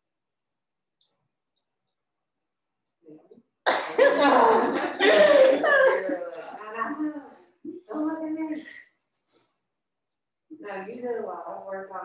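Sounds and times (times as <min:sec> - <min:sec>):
people laughing and talking: 0:03.8 - 0:08.6.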